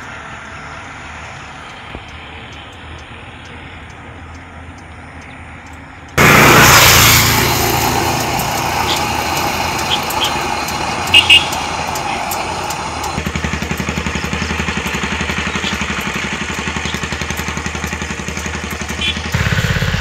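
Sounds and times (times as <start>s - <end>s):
small engine running: 6.2s - 20.0s.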